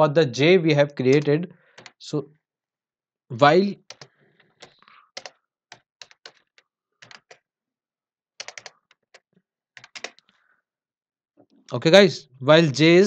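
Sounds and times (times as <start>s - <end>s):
computer keyboard typing: 1.1s - 2.0s, 3.8s - 7.4s, 8.4s - 10.2s.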